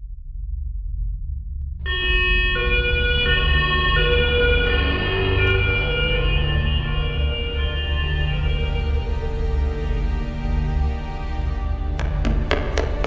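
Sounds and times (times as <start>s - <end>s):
two-tone police siren: 1.9s - 10.1s.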